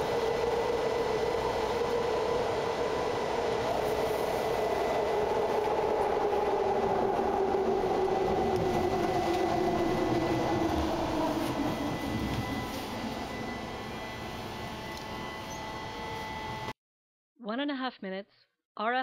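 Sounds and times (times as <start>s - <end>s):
train wheels rumbling on rail: 0.0s - 15.8s
droning whine: 0.0s - 16.7s.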